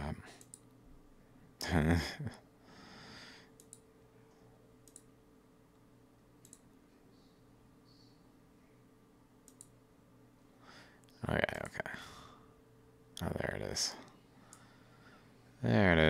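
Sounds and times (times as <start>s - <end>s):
low steady hum: 0.0s - 16.0s
computer mouse clicks: 0.4s - 0.8s, 3.6s - 3.9s, 4.8s - 5.1s, 6.4s - 6.7s, 9.4s - 9.8s.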